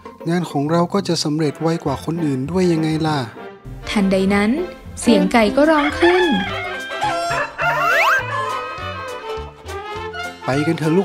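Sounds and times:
rooster crowing: 5.7 - 9.5.

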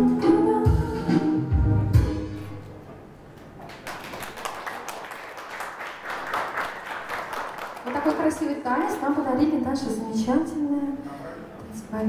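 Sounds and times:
audience applauding: 3.6 - 9.0.

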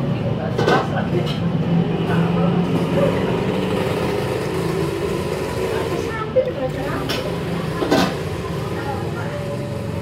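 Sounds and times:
low mechanical motor hum: 0.0 - 10.0.

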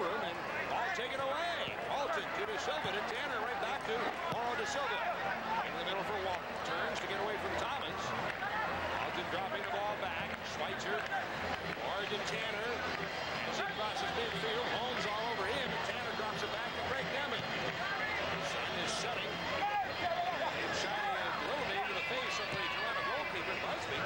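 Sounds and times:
stadium crowd chattering: 0.0 - 24.0.

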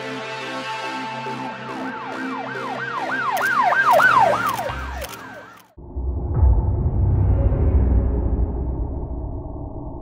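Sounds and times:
electronic music: 0.0 - 5.8
emergency siren yelping: 1.7 - 5.7.

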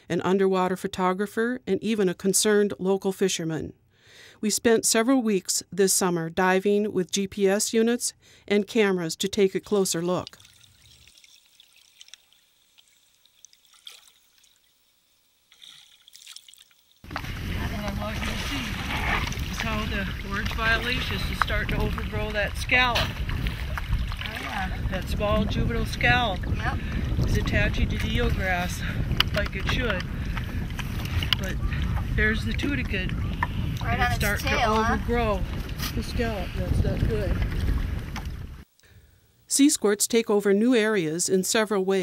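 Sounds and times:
water drips: 9.7 - 18.5, 19.2 - 28.4
water trickling: 9.7 - 35.4
wind on microphone: 17.0 - 38.6.

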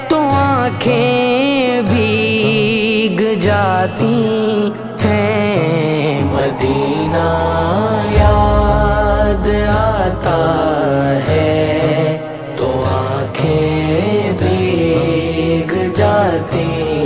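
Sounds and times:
vocal chorus humming: 2.4 - 17.0
deep low swell: 5.5 - 12.0.

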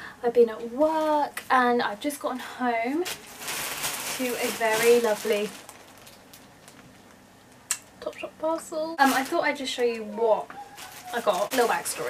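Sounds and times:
plastic bag crinkling: 3.0 - 7.2, 9.0 - 12.0.

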